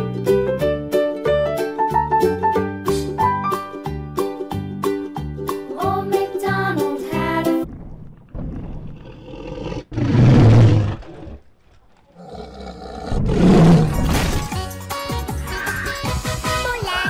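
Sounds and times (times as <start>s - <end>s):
music: 0.0s - 7.7s, 14.0s - 17.0s
dinosaur roar: 8.4s - 11.5s, 12.1s - 14.2s.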